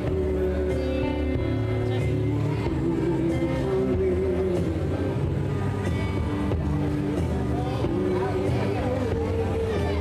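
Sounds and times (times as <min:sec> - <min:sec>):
bass line: 0:00.0 - 0:10.0
electric guitars: 0:00.0 - 0:10.0.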